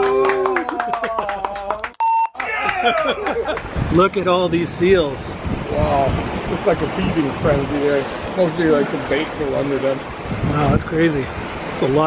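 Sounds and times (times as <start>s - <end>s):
short electronic beep: 2.0s - 2.4s
people talking indistinctly: 3.9s - 12.0s.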